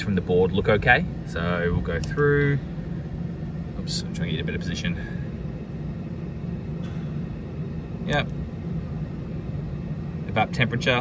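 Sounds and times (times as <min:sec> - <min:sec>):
air conditioner fan humming: 0:00.0 - 0:11.0.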